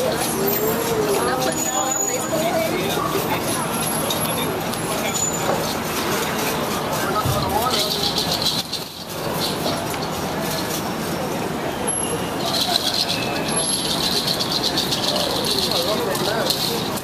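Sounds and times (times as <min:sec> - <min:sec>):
indistinct voices: 0:00.0 - 0:17.0
steady traffic noise: 0:00.0 - 0:17.0.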